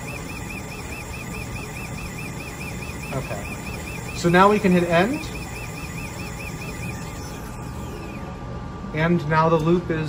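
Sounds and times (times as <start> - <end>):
electronic warbling alarm: 0.0 - 8.6
faint steady high tone: 0.0 - 8.6.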